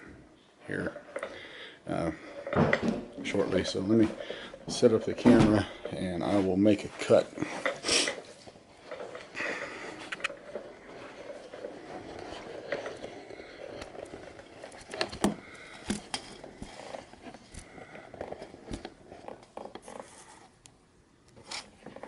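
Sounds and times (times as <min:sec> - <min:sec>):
camera handling rustling: 0:07.6 - 0:20.7.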